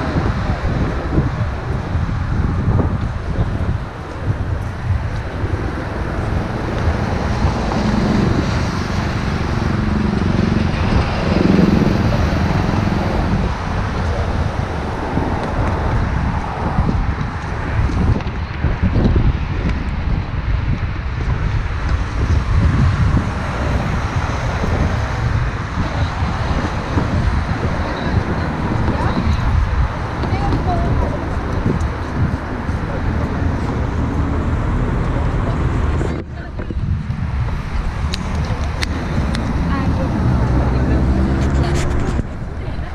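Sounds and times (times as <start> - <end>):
cars and buses passing: 0.0 - 42.9
wind rumbling on microphone: 0.0 - 42.9.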